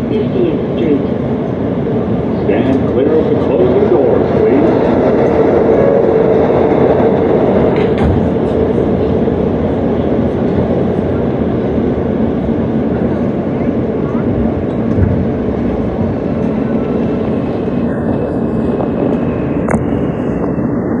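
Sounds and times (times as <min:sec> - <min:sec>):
subway car rumble and hiss: 0:00.0 - 0:21.0.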